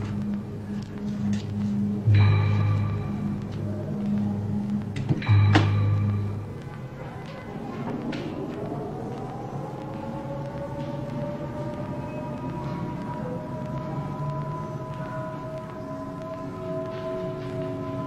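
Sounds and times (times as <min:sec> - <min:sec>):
low rumble: 0:00.0 - 0:18.0
air-raid siren: 0:08.6 - 0:18.0.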